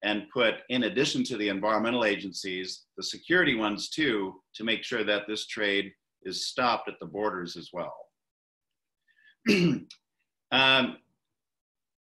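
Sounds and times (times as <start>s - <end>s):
man clearing his throat: 9.5s - 10.0s.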